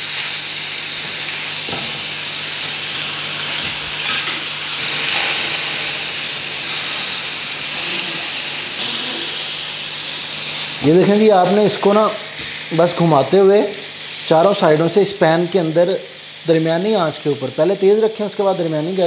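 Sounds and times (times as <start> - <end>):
meat sizzling in a pan: 0.0 - 19.0.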